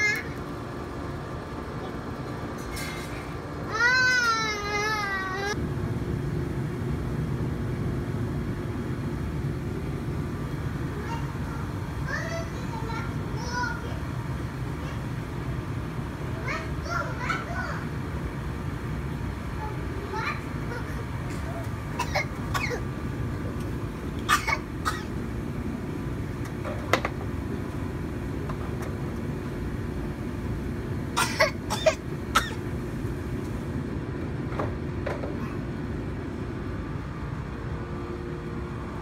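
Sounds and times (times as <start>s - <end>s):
children calling and babbling: 0.0s - 0.4s, 3.6s - 5.6s, 10.8s - 15.2s, 16.3s - 18.0s, 19.4s - 22.8s
child squealing: 3.7s - 5.6s
steady low rumble: 5.5s - 39.0s.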